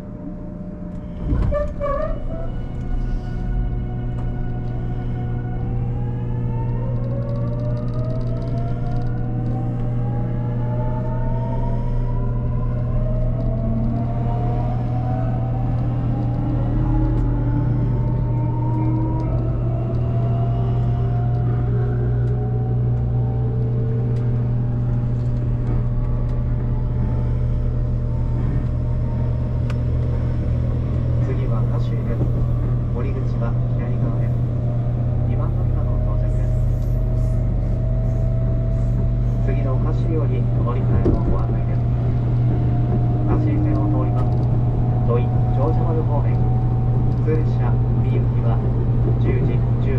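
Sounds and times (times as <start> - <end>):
train running noise and hum: 0.0 - 49.9.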